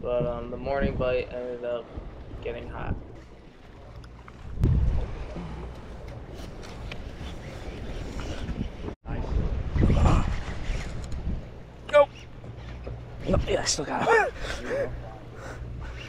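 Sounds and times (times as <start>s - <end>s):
wind gusting on microphone: 0.0s - 3.2s, 4.4s - 16.0s.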